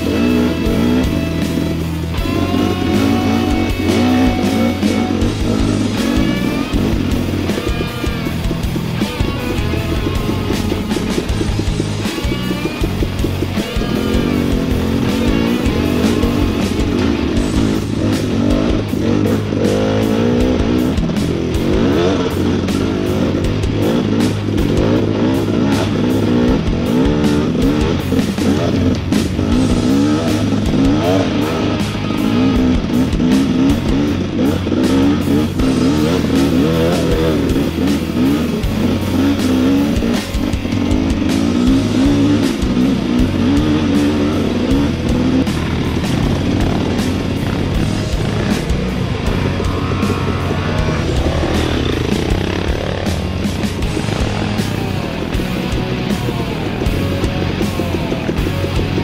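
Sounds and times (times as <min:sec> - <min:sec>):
dirt bike engine revving: 0:00.0 - 0:59.0
rock music with guitar: 0:00.0 - 0:59.0.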